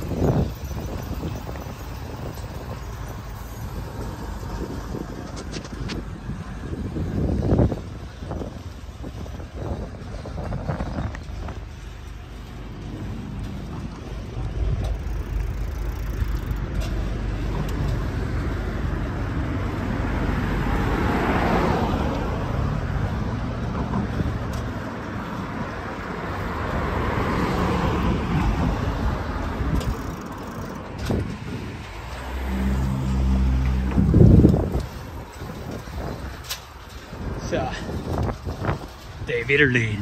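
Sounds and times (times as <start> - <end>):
traffic road and tyre noise: 0.0 - 40.0
car passing close: 12.7 - 40.0.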